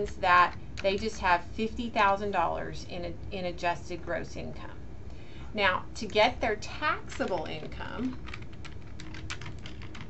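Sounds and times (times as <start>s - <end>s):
computer keyboard key clicks: 8.2s - 10.0s.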